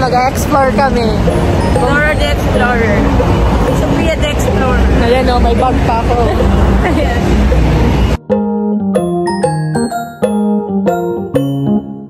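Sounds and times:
woman talking: 0.0s - 3.1s, 3.7s - 7.3s
bus passing: 0.0s - 8.2s
street traffic passing: 0.0s - 11.7s.

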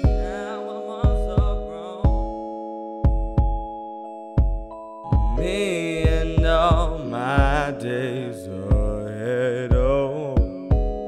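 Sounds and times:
person singing vocal runs: 0.0s - 2.3s, 5.2s - 10.6s
low kick drum hits: 1.0s - 2.4s, 3.0s - 3.7s, 4.4s - 7.8s, 8.7s - 9.1s, 9.7s - 11.0s.

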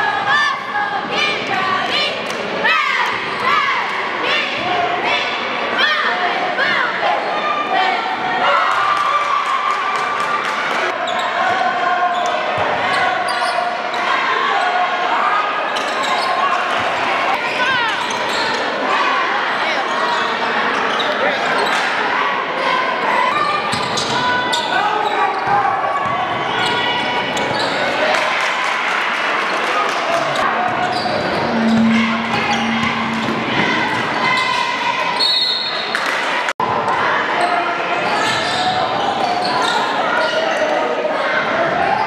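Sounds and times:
people shouting in a gym: 0.0s - 9.7s, 10.9s - 20.1s.

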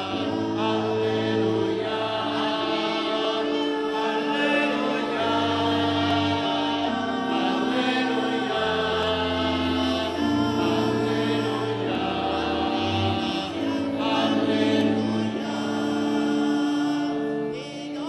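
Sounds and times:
choir singing a chant: 0.0s - 18.0s.

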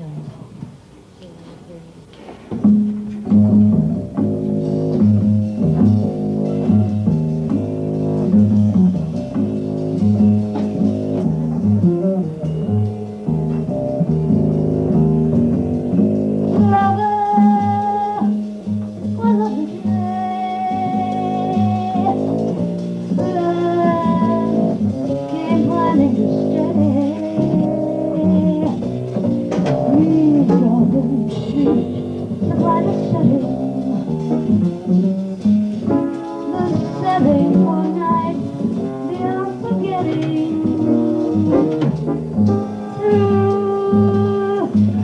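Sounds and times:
plucked double bass: 2.5s - 45.0s
piano chords: 2.6s - 45.0s
woman singing held notes: 23.2s - 28.8s, 29.9s - 33.8s, 36.3s - 41.6s, 42.5s - 45.0s.

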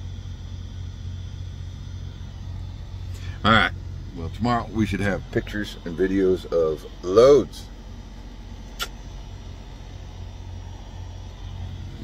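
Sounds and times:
diesel truck engine idling: 0.0s - 12.0s
short click: 8.7s - 9.0s.

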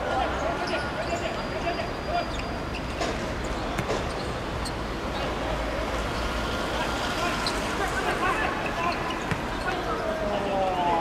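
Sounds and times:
steady background noise: 0.0s - 11.0s
distant players calling out: 6.8s - 11.0s.

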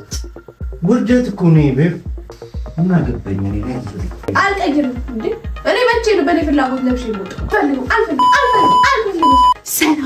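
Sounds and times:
censor bleep: 8.2s - 9.6s.

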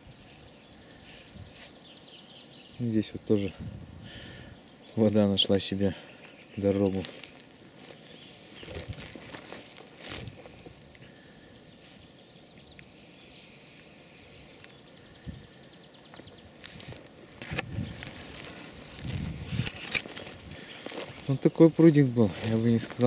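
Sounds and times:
footsteps rustling through dry grass: 5.8s - 23.0s.

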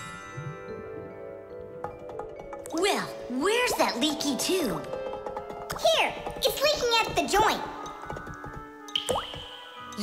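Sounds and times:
soft background music: 0.0s - 10.0s
cartoon water drip plink: 8.9s - 10.0s.

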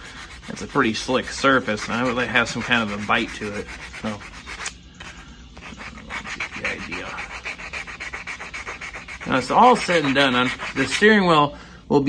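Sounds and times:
sandpaper rubbing on plastic: 0.0s - 11.3s.

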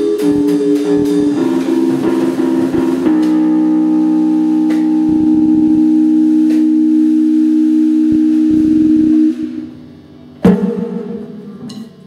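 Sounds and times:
band holding sustained note: 0.0s - 11.6s
soft low drum rumbles: 8.0s - 9.6s.

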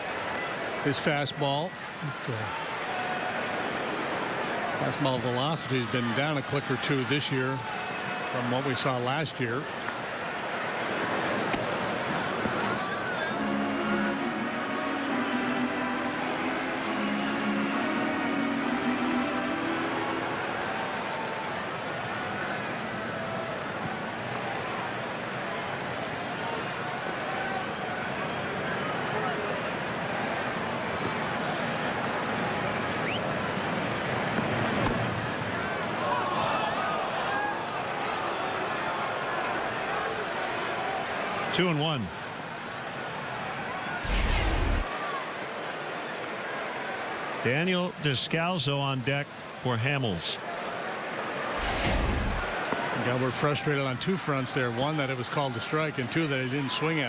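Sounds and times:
crowd murmur in stands: 0.0s - 57.0s.

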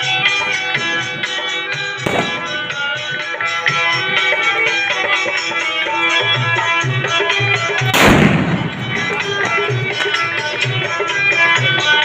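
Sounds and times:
dance music with tabla: 0.0s - 12.0s
firecracker bang: 2.0s - 2.9s, 7.9s - 10.1s.

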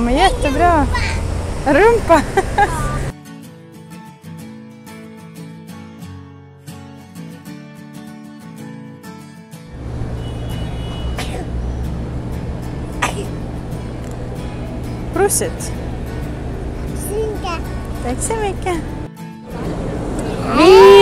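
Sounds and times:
city street traffic rumble: 0.0s - 3.1s, 9.7s - 21.0s
upbeat strummed guitar music: 2.6s - 9.8s, 11.5s - 20.2s.

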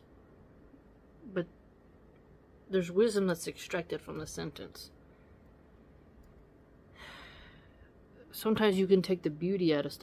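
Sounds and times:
soft breath: 6.9s - 8.1s.

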